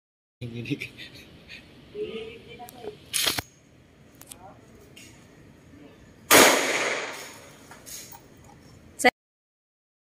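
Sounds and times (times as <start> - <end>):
handgun shot: 6.3 - 7.4.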